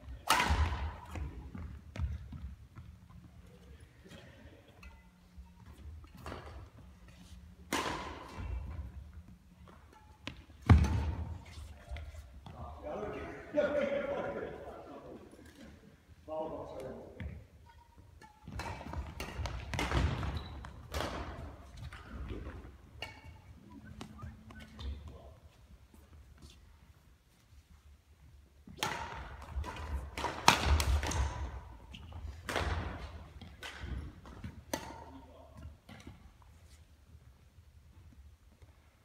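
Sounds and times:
rackets hitting shuttlecock: 0.0 - 12.6, 16.8 - 26.6, 28.6 - 36.5.

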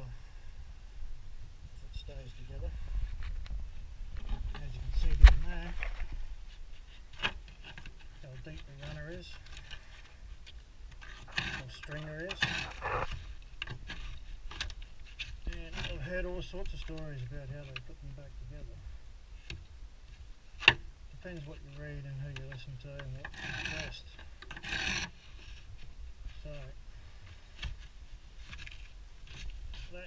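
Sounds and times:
steady low rumble: 0.0 - 6.6
low steady rumble: 0.0 - 24.4
hand tool scraping timber: 11.0 - 14.3, 23.3 - 25.7.

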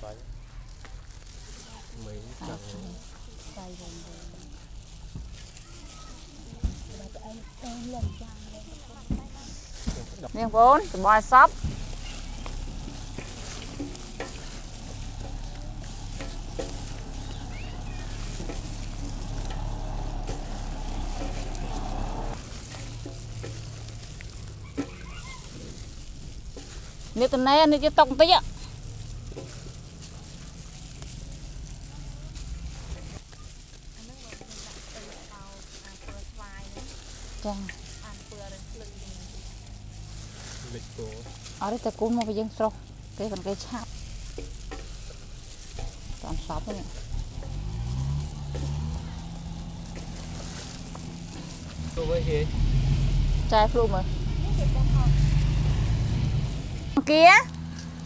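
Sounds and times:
noodles being tossed: 0.0 - 53.5
hands mixing food in basin: 0.0 - 58.0.

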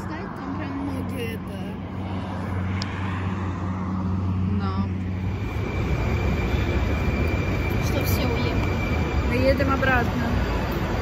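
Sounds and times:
road traffic hum: 0.0 - 11.0.

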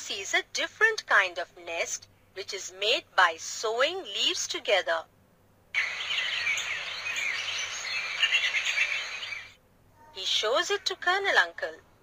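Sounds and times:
steady outdoor hiss: 0.0 - 12.0
birds chirping: 5.8 - 9.6.

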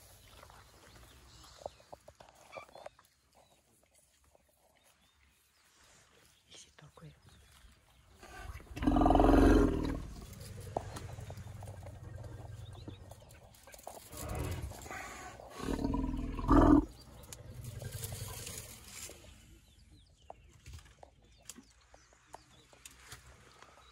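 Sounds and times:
elephant rumbles: 8.3 - 19.3.

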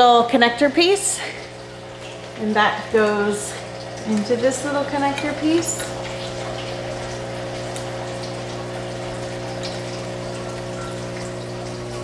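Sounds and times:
water pump humming: 0.0 - 12.0
water trickling: 0.0 - 12.0.

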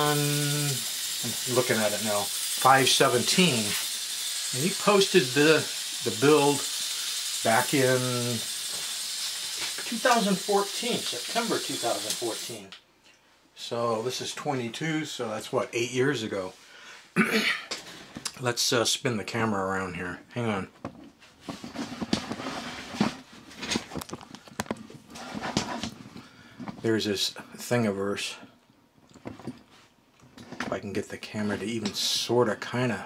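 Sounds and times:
steady hiss: 0.0 - 12.8, 30.9 - 33.0.

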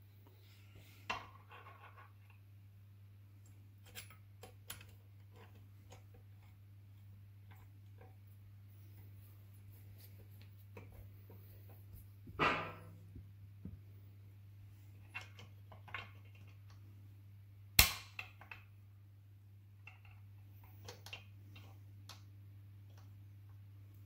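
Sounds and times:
tools clicking and scraping metal: 3.8 - 6.1.

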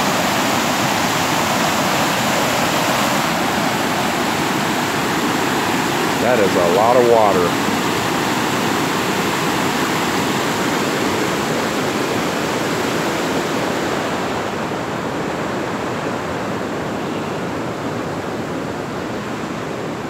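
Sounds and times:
flood water rushing: 0.0 - 20.0.

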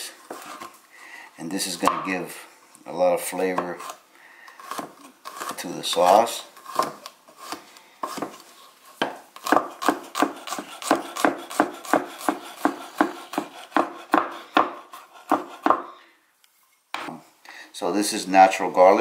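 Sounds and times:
knife mincing on wooden board: 9.4 - 15.9.

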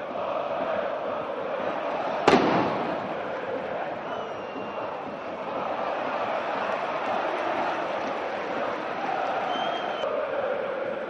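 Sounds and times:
stadium crowd noise: 0.0 - 11.0
firecracker bang: 2.2 - 3.3.

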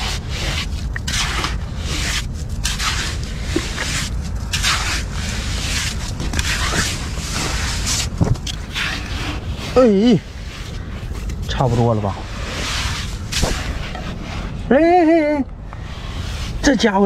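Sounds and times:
hand scraping dry sand: 0.0 - 17.0
low rumble: 0.0 - 17.0.

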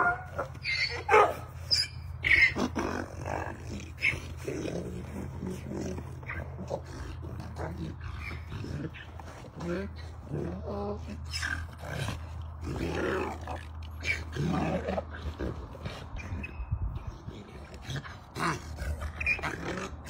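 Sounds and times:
donkey calling: 0.0 - 3.2.

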